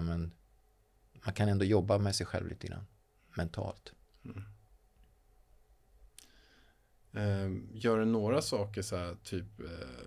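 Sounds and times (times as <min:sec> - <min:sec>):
man murmuring mm: 0:04.2 - 0:04.6.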